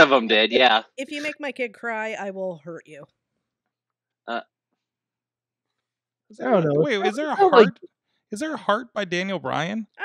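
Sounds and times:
person saying uh: 0.0 - 1.5, 6.4 - 7.8, 8.4 - 9.8.

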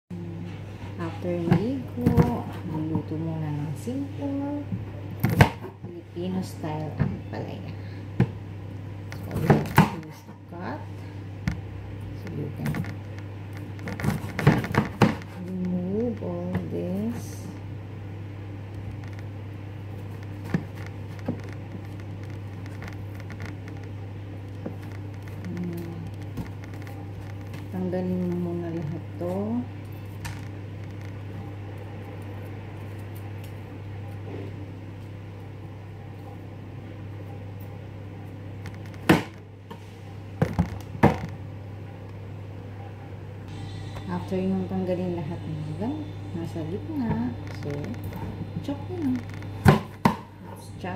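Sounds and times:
steady low hum: 0.0 - 50.9.

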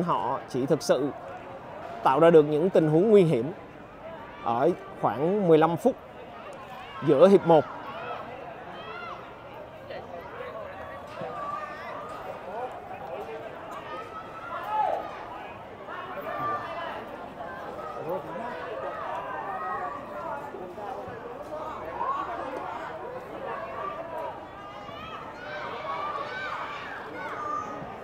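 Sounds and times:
crowd chatter: 0.0 - 28.0.

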